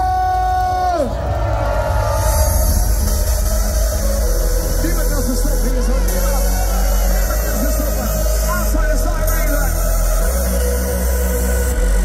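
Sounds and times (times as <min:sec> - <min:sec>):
hard dance music with heavy bass: 0:01.9 - 0:12.0.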